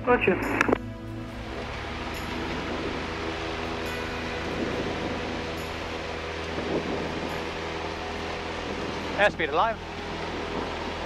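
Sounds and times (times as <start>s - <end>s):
airplane engine droning: 0.0s - 11.0s.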